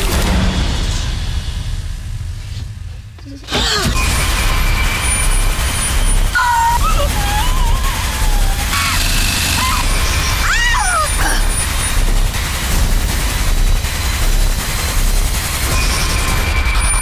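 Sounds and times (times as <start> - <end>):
dense low rumble: 2.8 - 15.8
woman crying out sharply: 6.4 - 9.0, 9.6 - 11.5
woman moaning: 6.4 - 11.5
woman gasping: 10.9 - 11.5.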